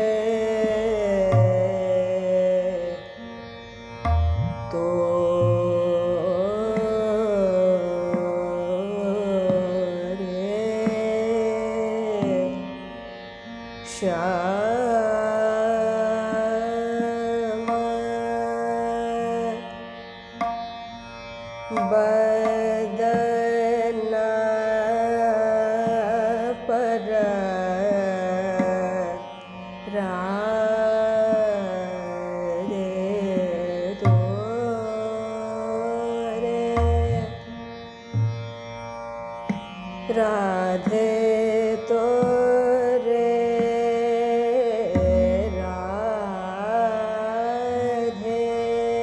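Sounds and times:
tabla strokes: 0.0s - 2.9s, 4.0s - 12.9s, 14.4s - 18.2s, 20.4s - 20.9s, 21.7s - 29.2s, 29.9s - 38.6s, 39.4s - 48.4s
woman singing classical raag: 0.0s - 38.8s, 39.4s - 49.0s.

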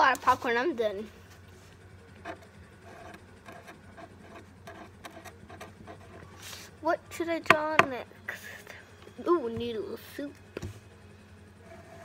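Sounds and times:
marker scratching on paper: 2.2s - 6.7s.

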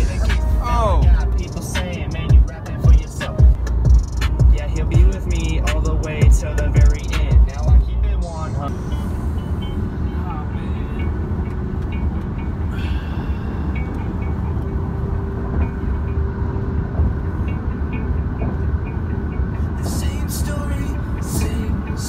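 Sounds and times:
car cabin road and engine rumble: 0.0s - 22.0s.

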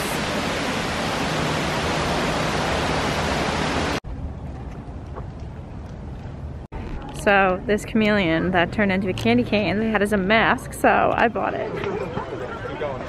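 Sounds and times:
running water rushing: 0.0s - 4.0s.

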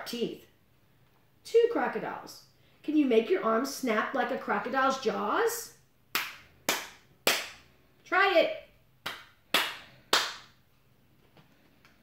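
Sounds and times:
sharp hand clap: 6.1s - 7.7s, 9.0s - 10.6s.

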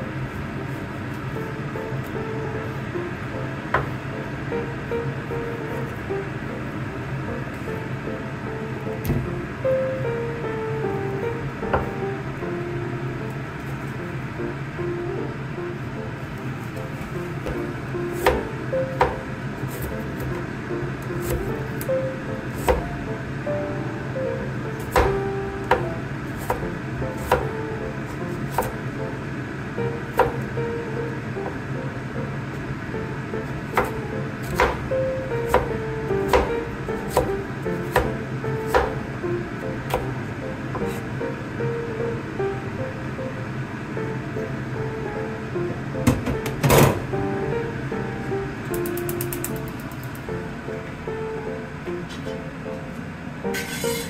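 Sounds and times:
background music: 1.4s - 54.0s.

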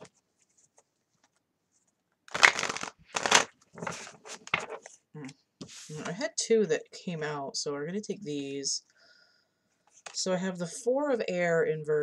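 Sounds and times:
cards being shuffled: 0.0s - 5.0s.

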